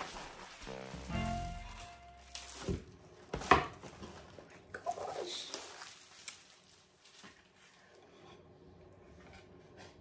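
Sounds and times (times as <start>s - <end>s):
plastic wrapping rustling: 0.0s - 8.0s.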